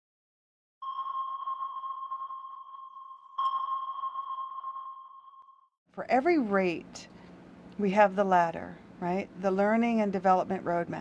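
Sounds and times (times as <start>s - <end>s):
sonar ping: 0.8s - 5.8s
woman speaking: 6.0s - 7.1s, 7.8s - 11.0s.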